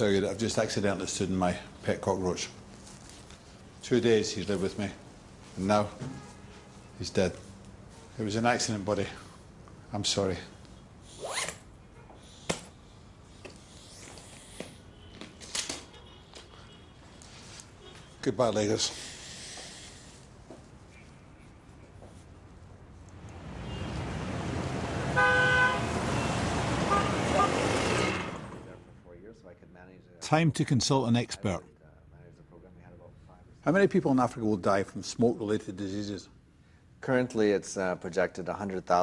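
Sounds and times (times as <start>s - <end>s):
road traffic noise: 0.0s - 29.2s
car horn: 23.6s - 24.1s, 25.0s - 28.4s.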